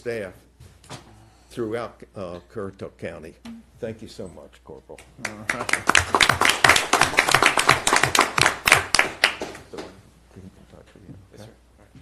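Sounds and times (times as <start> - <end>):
small audience applauding: 5.2 - 9.9.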